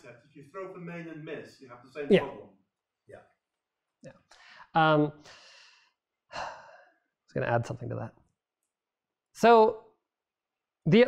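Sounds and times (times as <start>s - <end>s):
man saying um: 0.6s - 2.4s.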